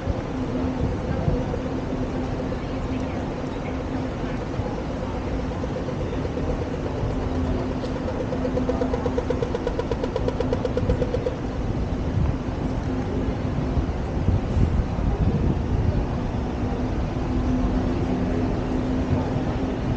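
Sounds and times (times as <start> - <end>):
street traffic hum: 0.0 - 19.9
crossing signal rapid ticking: 0.5 - 12.0.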